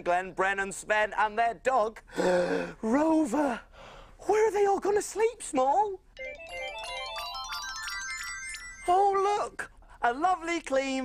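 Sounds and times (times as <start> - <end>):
twinkling bell-like magic cue: 6.2 - 9.6.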